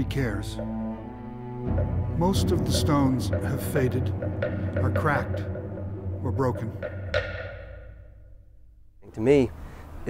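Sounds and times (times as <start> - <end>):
orchestral music: 0.0 - 8.8
ringing percussive stroke: 0.0 - 8.9.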